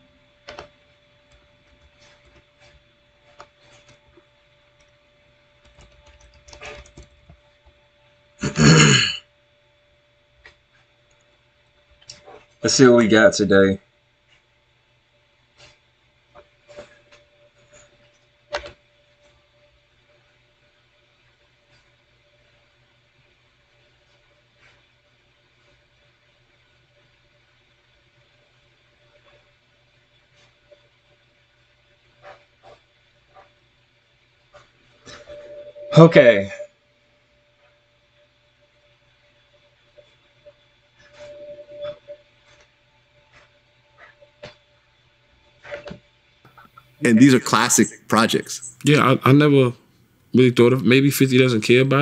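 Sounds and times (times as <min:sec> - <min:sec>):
faint electrical hum: 0:00.0 - 0:52.0
man making throaty noise: 0:08.4 - 0:09.2, 0:47.0 - 0:49.7
man talking: 0:12.6 - 0:13.8, 0:35.9 - 0:36.6, 0:47.0 - 0:49.8, 0:50.4 - 0:52.0.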